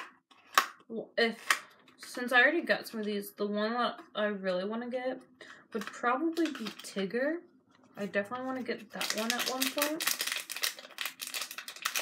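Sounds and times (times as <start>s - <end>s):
packaging crinkling: 5.8s - 6.9s, 8.8s - 12.0s.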